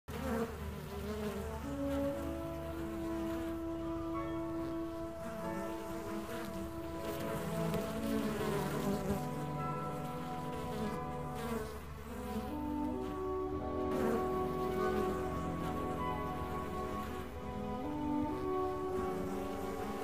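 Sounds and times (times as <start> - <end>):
bees buzzing: 0.1 - 20.0
orchestral waltz music: 1.4 - 20.0.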